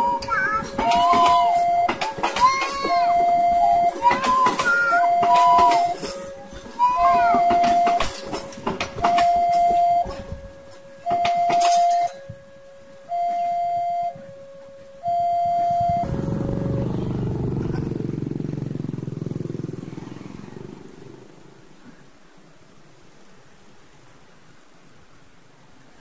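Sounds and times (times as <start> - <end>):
train wagons clacking over rail joints: 0.0 - 12.2
level crossing two-tone alarm: 0.0 - 16.1
car engine pulling away: 15.8 - 21.6
motorcycle engine pulling away: 15.9 - 21.6.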